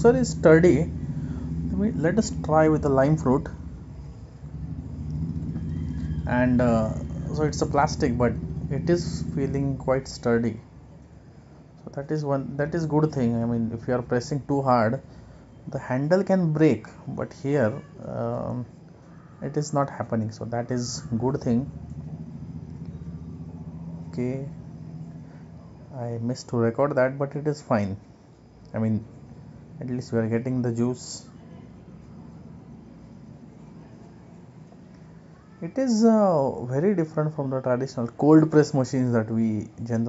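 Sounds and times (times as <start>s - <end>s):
low background hum: 0.0s - 40.0s.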